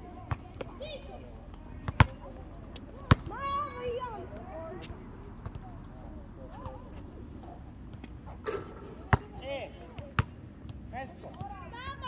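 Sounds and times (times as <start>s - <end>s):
basketball bouncing on court: 1.8s - 2.2s, 8.5s - 9.4s.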